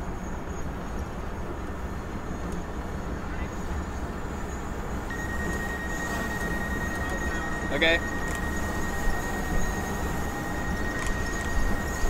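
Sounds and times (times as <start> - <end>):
truck engine and road noise: 0.0 - 12.0
high-pitched alarm tone: 4.4 - 12.0.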